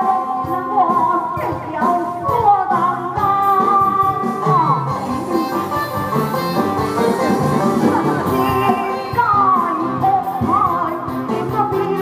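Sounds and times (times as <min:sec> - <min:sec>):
opera ensemble with plucked strings: 0:04.4 - 0:12.0.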